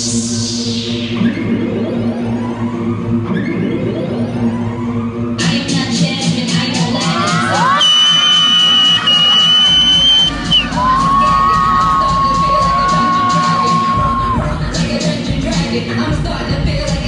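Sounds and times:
dance music over speakers: 0.0 - 3.2, 5.4 - 17.0
audience cheering and shouting: 7.0 - 14.6.

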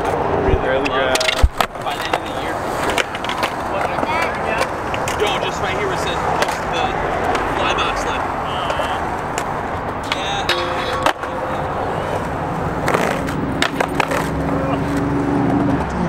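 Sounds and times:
skateboard wheels rolling on concrete: 0.0 - 16.0.

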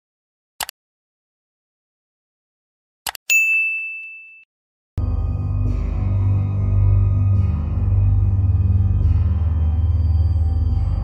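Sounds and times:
bright bell ding: 3.3 - 4.5
music: 5.0 - 11.0.

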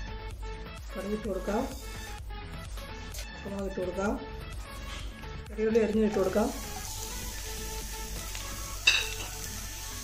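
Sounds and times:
spices sizzling in hot oil: 0.6 - 3.8, 4.7 - 10.0.

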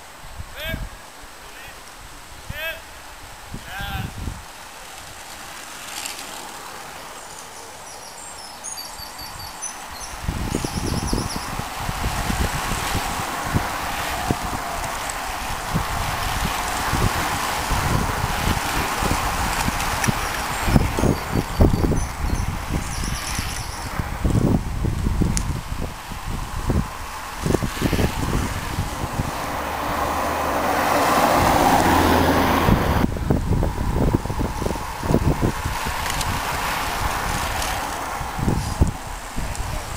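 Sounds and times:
wind buffeting microphone: 2.0 - 5.8, 6.4 - 39.9
bicycles riding past: 4.3 - 39.9
motor vehicle passing: 4.9 - 39.9.

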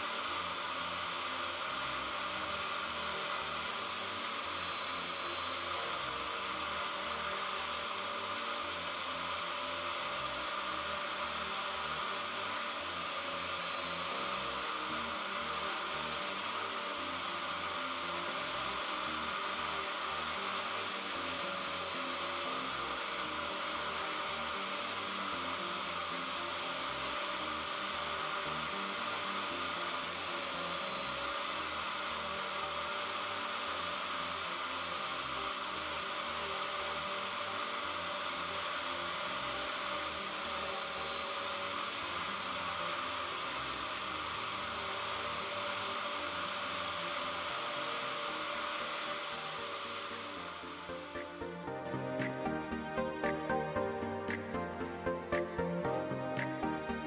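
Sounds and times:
spot cleaner motor whine: 0.0 - 57.0.

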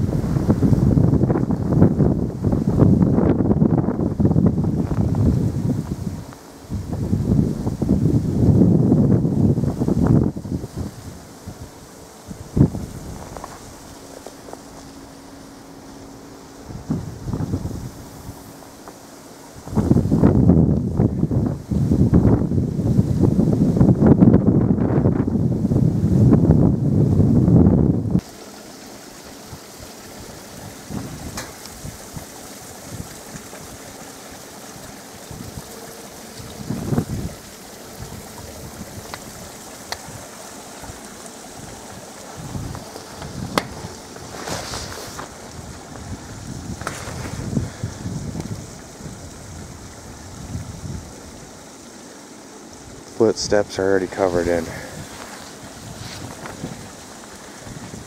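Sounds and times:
wind buffeting microphone: 0.0 - 28.3, 29.2 - 51.7, 52.7 - 58.0
steady outdoor hiss: 0.0 - 58.0.

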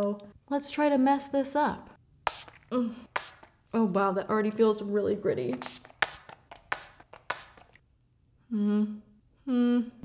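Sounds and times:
spray bottle hissing sprays: 2.2 - 3.6, 5.5 - 7.8.

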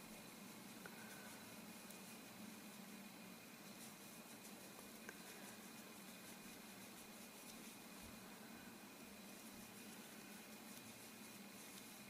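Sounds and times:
faint hiss and hum: 0.0 - 12.0.

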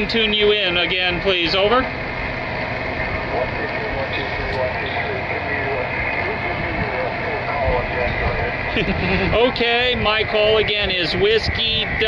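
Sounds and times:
radio hiss: 0.0 - 12.0
faint radio voice: 3.0 - 12.0.

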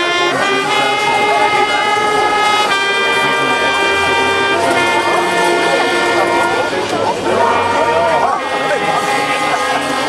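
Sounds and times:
brass band playing loud chords: 0.0 - 10.0
crowd voices: 0.0 - 10.0.

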